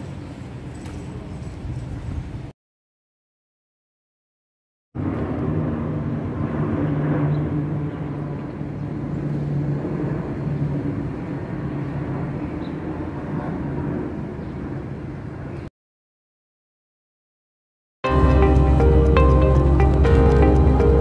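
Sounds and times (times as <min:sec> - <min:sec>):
jet airliner flying overhead: 0:05.0 - 0:15.7, 0:18.1 - 0:21.0.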